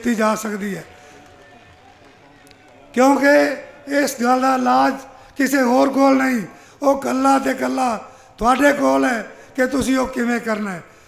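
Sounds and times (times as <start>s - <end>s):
man speaking into microphone: 0.0s - 1.0s, 2.9s - 11.0s.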